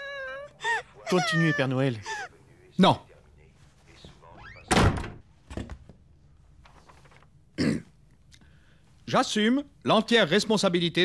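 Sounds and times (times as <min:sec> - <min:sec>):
door slamming shut: 0:04.7 - 0:05.7.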